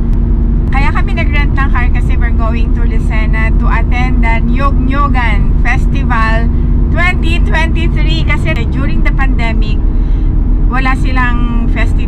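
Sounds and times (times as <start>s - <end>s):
car cabin road noise: 0.0s - 12.0s
woman talking: 0.7s - 9.8s, 10.7s - 12.0s.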